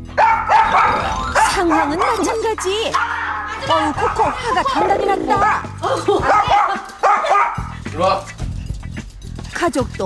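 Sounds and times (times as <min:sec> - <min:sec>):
background music: 0:00.0 - 0:10.0
small dog barking sharp yaps: 0:06.2 - 0:07.6.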